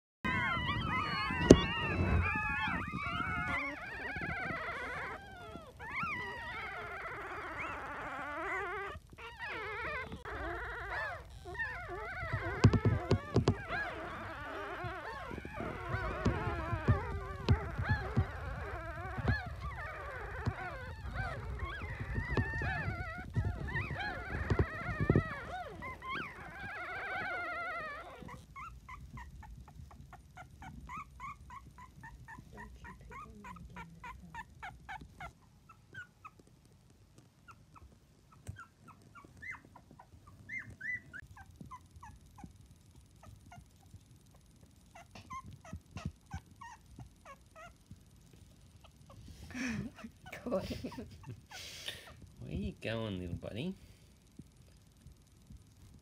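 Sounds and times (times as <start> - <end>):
puppies squeaking and whining: 0.2 - 53.6.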